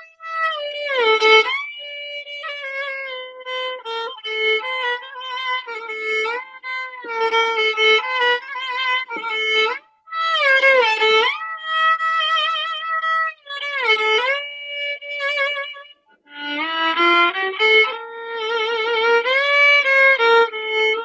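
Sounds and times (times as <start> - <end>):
solo violin slow melody: 0.0 - 21.0.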